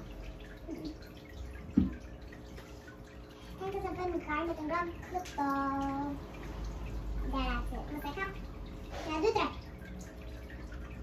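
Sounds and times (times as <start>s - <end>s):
child speaking: 3.6s - 6.2s, 7.2s - 9.7s.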